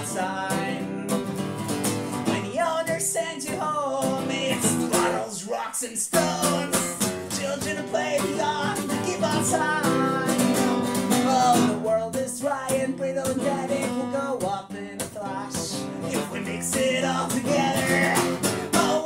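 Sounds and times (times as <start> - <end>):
man singing: 0.0 - 1.4, 2.1 - 19.0
acoustic guitar strummed: 0.0 - 19.0.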